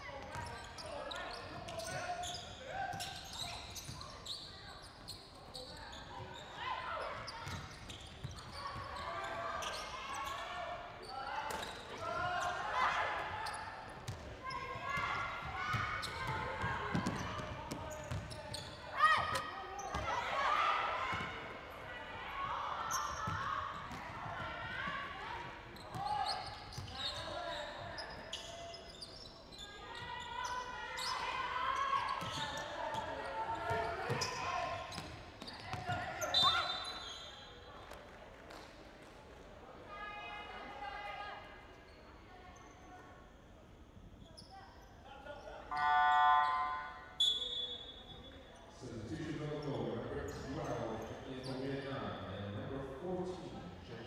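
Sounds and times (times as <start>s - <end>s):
players calling out: 45.6s - 47.8s.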